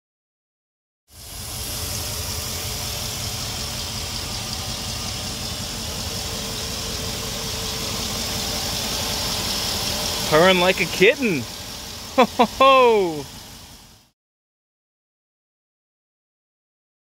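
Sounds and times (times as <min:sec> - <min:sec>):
car engine idling: 0:01.1 - 0:14.1.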